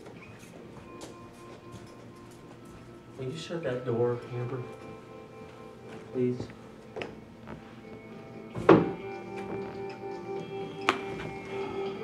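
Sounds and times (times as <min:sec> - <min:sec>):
music with long held notes: 0:00.7 - 0:12.0.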